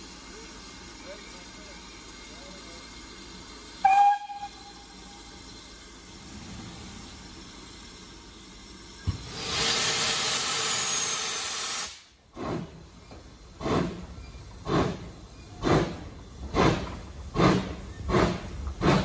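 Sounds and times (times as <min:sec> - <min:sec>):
loud hiss of steam: 0:00.0 - 0:19.0
steam locomotive whistle: 0:03.8 - 0:05.2.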